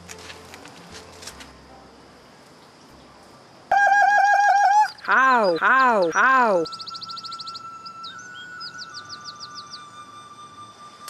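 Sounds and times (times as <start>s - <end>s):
background hiss: 0.0s - 11.0s
warbling war whoop: 3.7s - 5.0s.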